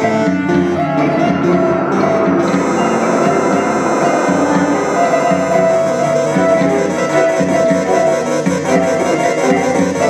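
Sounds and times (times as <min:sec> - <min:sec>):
instrumental folk band music: 0:00.0 - 0:10.0.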